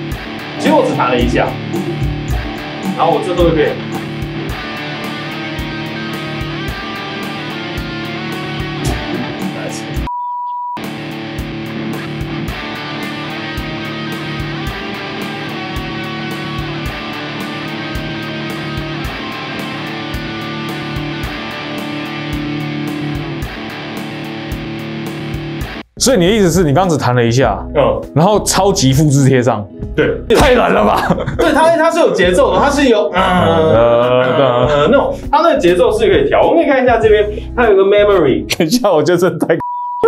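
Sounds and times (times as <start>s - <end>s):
electric guitar loop repeating: 0.0s - 10.1s, 10.8s - 25.9s, 33.4s - 35.2s
short steady beep: 39.6s - 40.0s.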